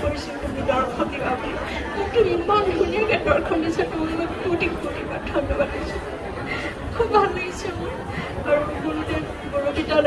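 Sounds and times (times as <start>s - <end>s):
elderly woman talking: 0.0s - 10.0s.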